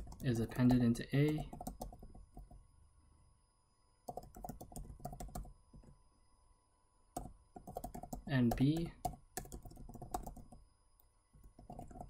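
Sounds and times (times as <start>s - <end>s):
computer keyboard typing: 0.0s - 2.6s, 4.0s - 5.9s, 7.2s - 10.6s, 11.4s - 12.0s.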